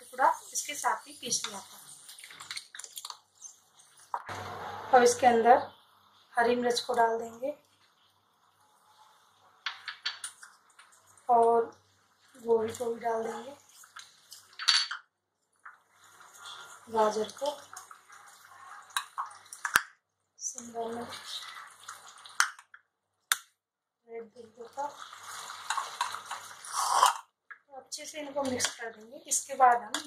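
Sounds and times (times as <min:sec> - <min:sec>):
vegetables sizzling in oil: 0:15.7 - 0:19.8, 0:20.7 - 0:22.5, 0:24.6 - 0:27.2
wooden spatula scraping pan: 0:24.9 - 0:27.2.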